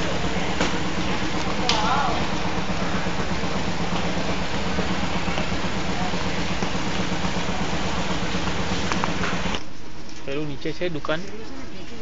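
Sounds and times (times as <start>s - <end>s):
steady rushing din: 0.0s - 9.6s
low hum: 0.0s - 10.1s.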